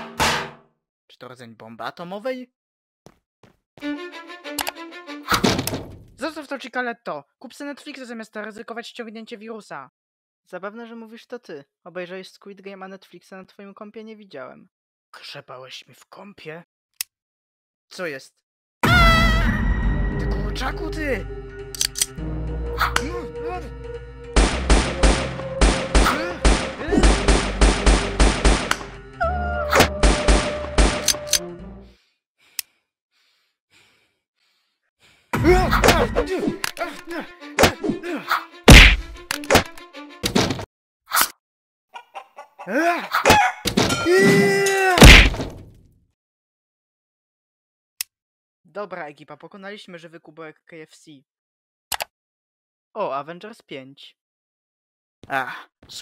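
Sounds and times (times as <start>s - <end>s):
door smashed in crash: 0.0s - 0.6s, 45.0s - 45.7s
sharp click: 21.7s - 22.2s, 28.6s - 28.9s, 31.0s - 31.4s, 38.7s - 39.8s, 51.9s - 52.1s
faint short breaths: 31.8s - 35.3s.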